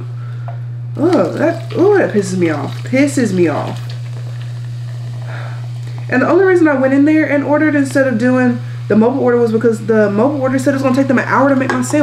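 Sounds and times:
low electrical hum: 0.0s - 12.0s
soda fizzing and pouring: 1.0s - 6.9s, 10.0s - 12.0s.

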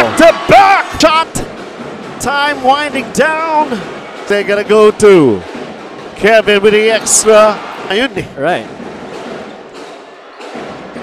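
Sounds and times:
crowd hum: 0.0s - 11.0s.

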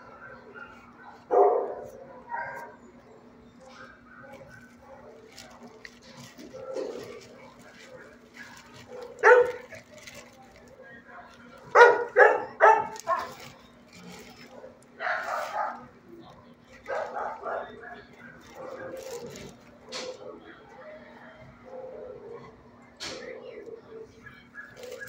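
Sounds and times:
dog barking: 0.0s - 2.8s, 3.7s - 9.8s, 11.7s - 13.5s, 14.4s - 15.9s, 16.8s - 20.4s, 21.6s - 25.0s.

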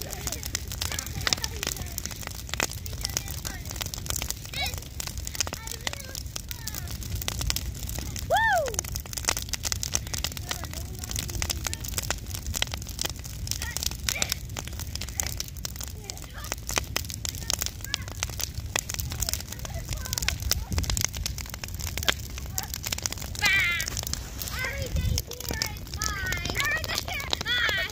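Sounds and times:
bonfire crackling and popping: 0.0s - 27.9s
low rumble of flames: 0.0s - 27.9s.

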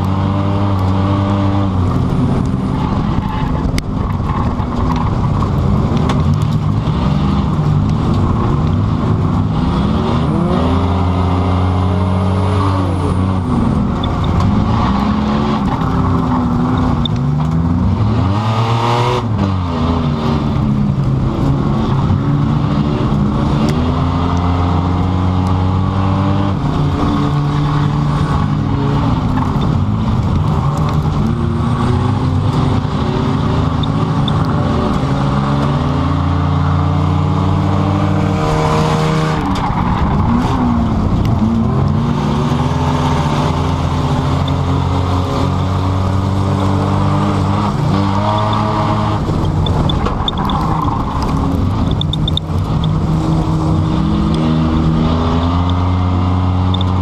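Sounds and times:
car engine running hard: 0.0s - 57.0s.

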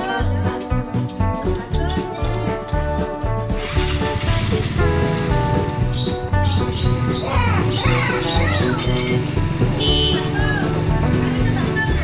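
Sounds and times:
background music with pulsing bass: 0.0s - 12.0s.

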